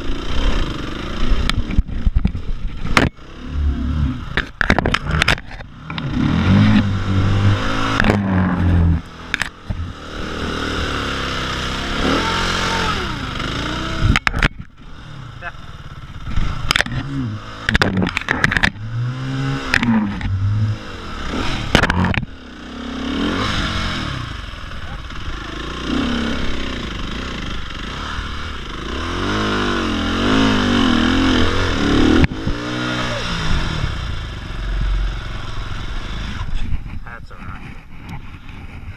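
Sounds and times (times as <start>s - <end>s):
motorbike engine revving: 0.0s - 38.9s.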